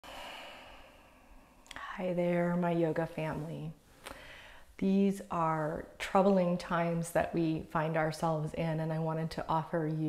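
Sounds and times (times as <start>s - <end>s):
woman speaking: 1.7s - 3.8s, 4.8s - 10.0s.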